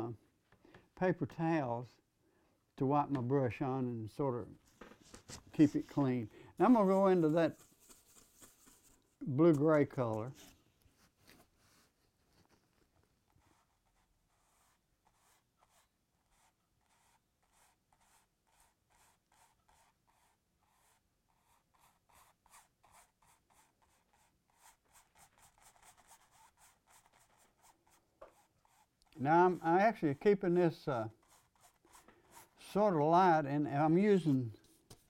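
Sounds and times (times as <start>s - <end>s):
brush strokes on canvas: 5.1s - 12.6s, 13.3s - 32.8s.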